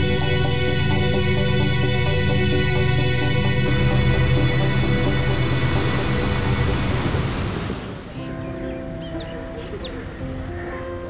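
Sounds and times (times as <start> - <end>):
background music: 0.0 - 11.0
sea surf washing on beach: 5.4 - 8.2.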